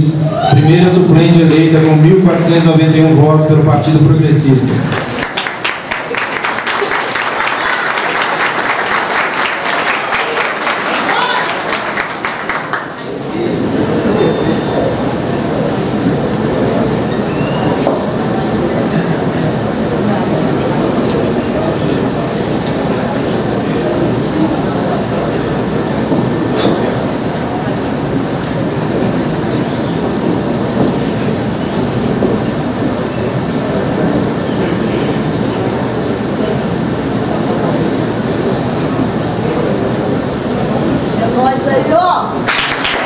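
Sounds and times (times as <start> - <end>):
audience applauding: 4.9 - 13.3, 42.4 - 43.0.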